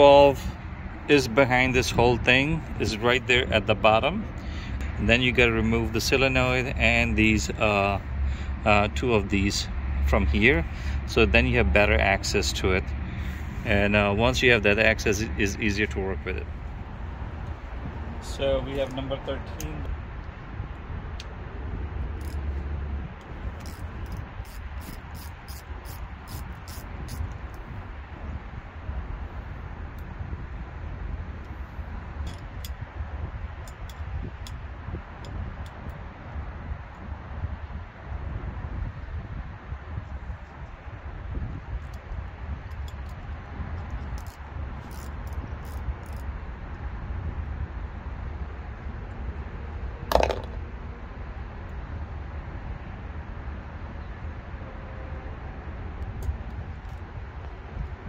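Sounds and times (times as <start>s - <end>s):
low outdoor rumble: 0.0s - 58.0s
socket ratchet clicking: 22.1s - 22.5s, 23.2s - 27.6s, 32.2s - 32.8s, 42.6s - 46.3s.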